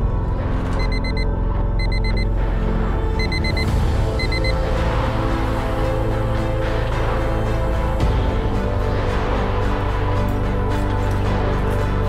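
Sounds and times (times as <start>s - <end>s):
dark film score drone: 0.0s - 12.0s
alarm clock beeping: 0.8s - 2.4s, 3.1s - 4.7s.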